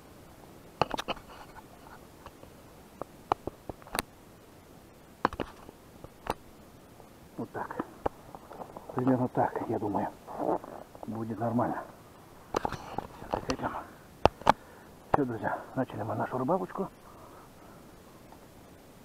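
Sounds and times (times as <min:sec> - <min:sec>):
man speaking quietly: 0:07.4 - 0:07.9, 0:08.9 - 0:12.0, 0:15.1 - 0:17.0.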